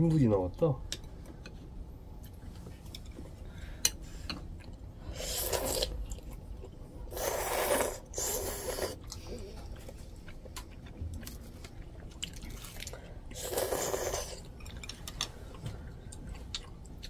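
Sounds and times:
noodles slurped from a bowl: 0:07.1 - 0:09.0, 0:13.4 - 0:14.4
chewing: 0:08.4 - 0:17.0.

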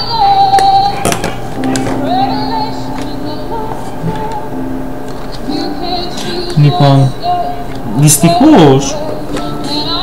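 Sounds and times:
song through small speakers: 0:00.0 - 0:10.0
speakers being handled knocks: 0:00.6 - 0:02.1.

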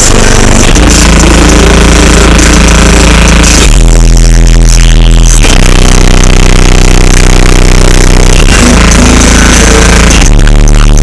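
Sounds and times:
loud bass-heavy car audio music: 0:00.0 - 0:11.0.

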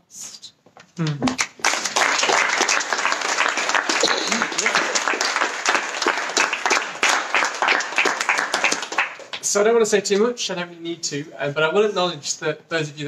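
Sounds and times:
audience applauding: 0:01.2 - 0:09.5.

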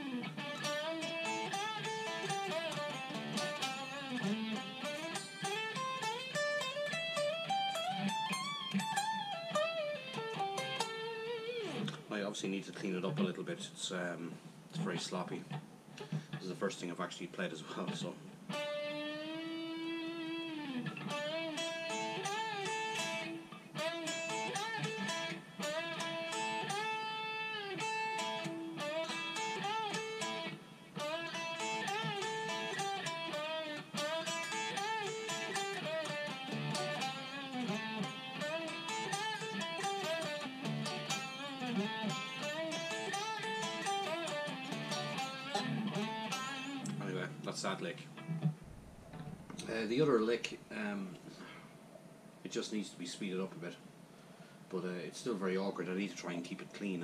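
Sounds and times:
electric guitar lead with string bends: 0:00.0 - 0:12.1, 0:17.9 - 0:49.7.

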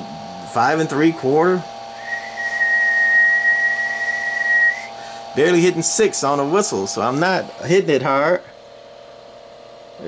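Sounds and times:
person whistling high note: 0:02.0 - 0:04.9.

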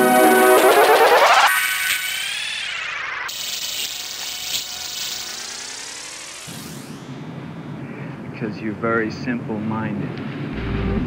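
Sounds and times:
gliding processed synth tones: 0:00.0 - 0:03.3, 0:04.8 - 0:07.9.

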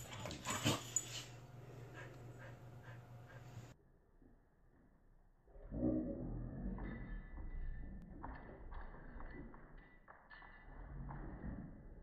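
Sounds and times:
dogs play-fighting: 0:00.0 - 0:03.8.

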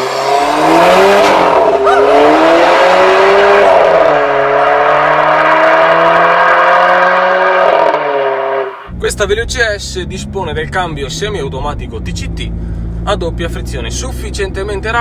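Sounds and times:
car engine accelerating hard: 0:00.0 - 0:15.0.

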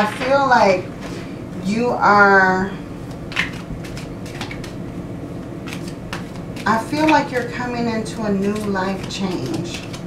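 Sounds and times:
cards being shuffled: 0:03.1 - 0:04.8, 0:05.6 - 0:07.6, 0:08.4 - 0:10.0.

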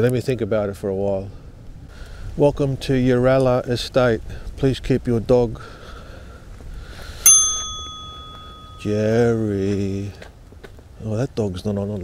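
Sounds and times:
bright metallic ding: 0:07.3 - 0:09.0.

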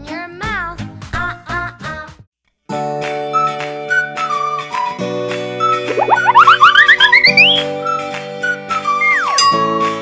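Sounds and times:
children's background music: 0:00.0 - 0:02.2, 0:05.7 - 0:08.0
cartoon upward swoops: 0:05.9 - 0:07.7.

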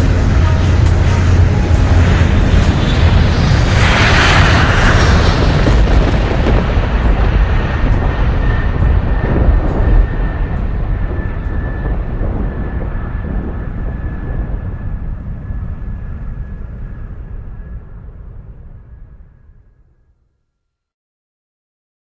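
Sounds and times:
loud rumbling noise: 0:00.0 - 0:19.9.

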